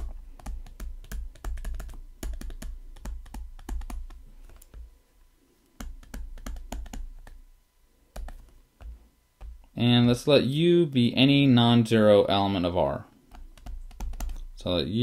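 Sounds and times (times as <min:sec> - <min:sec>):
stylus tapping on tablet screen: 0:00.0 - 0:04.9, 0:05.8 - 0:07.4, 0:08.1 - 0:09.7, 0:13.3 - 0:14.5.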